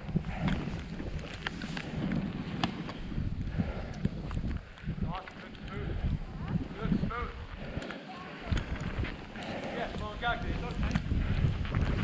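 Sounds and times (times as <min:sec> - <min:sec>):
wind rumbling on microphone: 0:00.0 - 0:12.0
skis running through powder snow: 0:00.1 - 0:03.4, 0:08.0 - 0:12.0
light knocks of skis and poles: 0:00.4 - 0:03.1.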